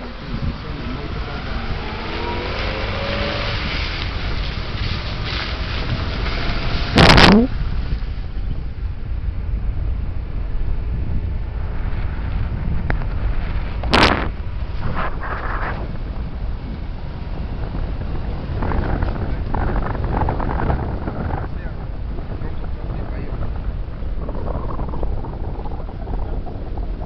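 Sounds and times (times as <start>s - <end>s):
vehicle rumbling on dirt road: 0.0s - 27.0s
wind buffeting microphone: 0.0s - 27.0s.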